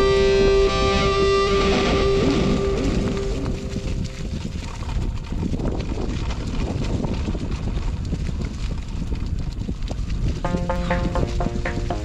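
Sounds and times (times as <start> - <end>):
music with plucked notes: 0.0 - 3.9, 10.4 - 12.0
bike rolling over gravel: 0.1 - 12.0.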